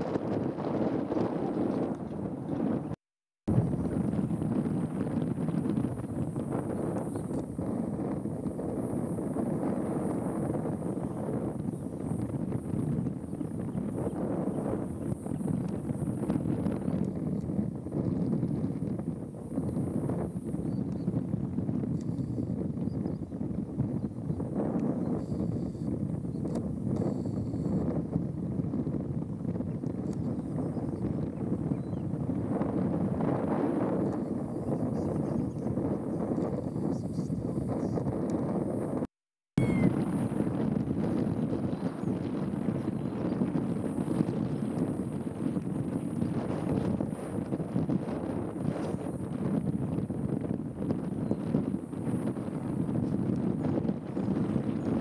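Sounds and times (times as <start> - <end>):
wind on microphone: 0.0 - 55.0.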